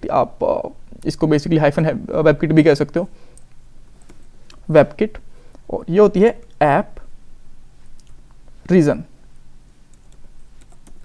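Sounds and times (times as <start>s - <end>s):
computer keyboard typing: 9.9s - 11.0s.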